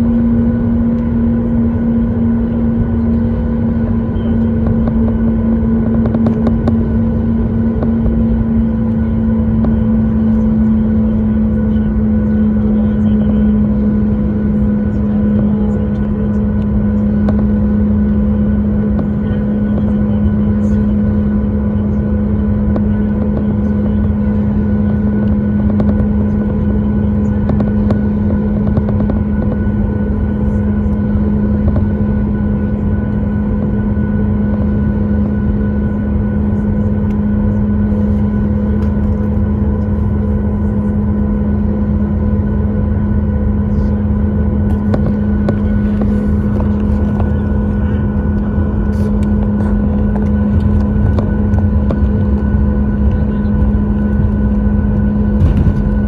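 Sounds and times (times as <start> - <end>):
aircraft rolling rumble: 0.0 - 56.0
jet engines idling hum: 0.0 - 56.0.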